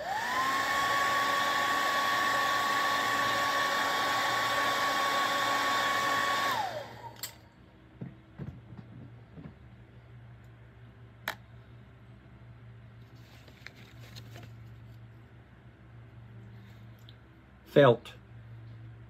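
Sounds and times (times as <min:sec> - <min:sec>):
hair dryer motor whine: 0:00.0 - 0:07.3.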